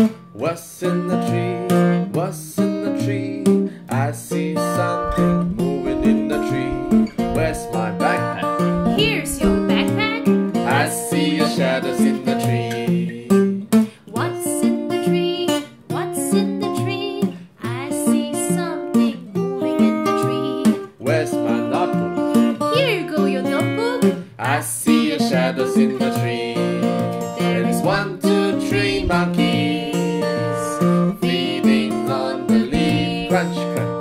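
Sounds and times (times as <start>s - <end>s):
strummed plucked strings: 0.0s - 34.0s
children's sing-along singing: 3.9s - 13.4s, 14.1s - 22.1s, 22.7s - 34.0s.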